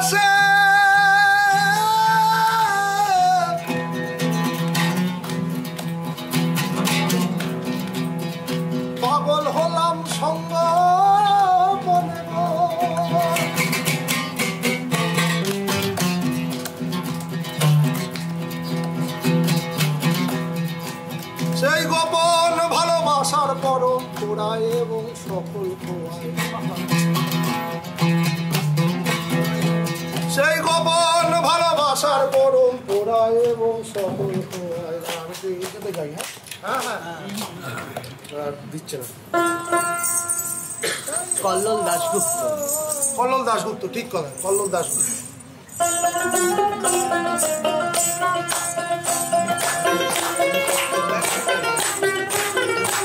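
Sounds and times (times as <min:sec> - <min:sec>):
man singing: 0:00.0 - 0:04.0, 0:09.0 - 0:14.0, 0:21.4 - 0:26.9, 0:30.2 - 0:35.7, 0:41.1 - 0:43.8
plucked oud: 0:01.2 - 0:35.4, 0:39.2 - 0:41.0, 0:45.5 - 0:53.0.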